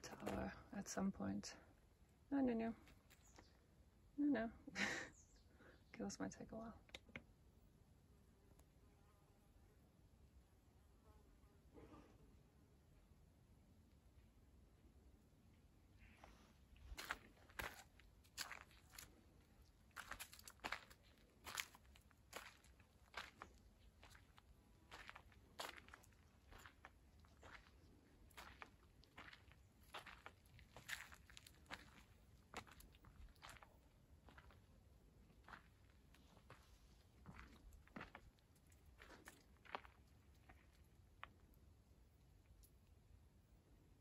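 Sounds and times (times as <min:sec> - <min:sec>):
footsteps crunching on gravel: 0:16.9 - 0:34.6.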